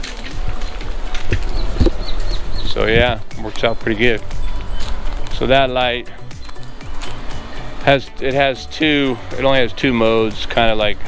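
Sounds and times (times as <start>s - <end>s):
footsteps walking: 0.0s - 7.6s.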